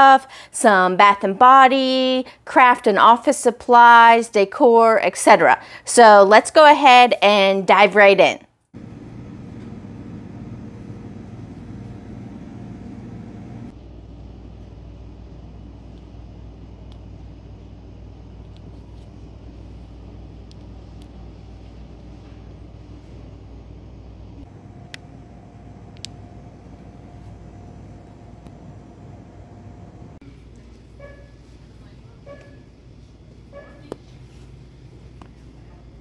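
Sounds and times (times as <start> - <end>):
low hum of shop ambience: 8.6 - 36.0.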